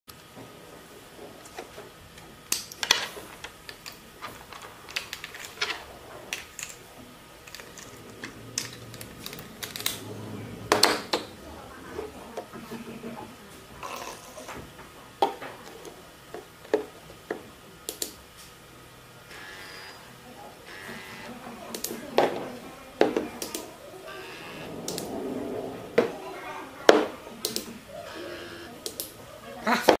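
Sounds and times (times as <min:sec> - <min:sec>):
steady noise: 0:00.1 - 0:29.4.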